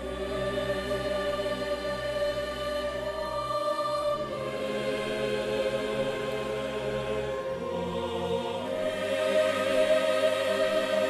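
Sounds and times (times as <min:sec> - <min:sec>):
choir singing sustained notes: 0:00.0 - 0:11.0.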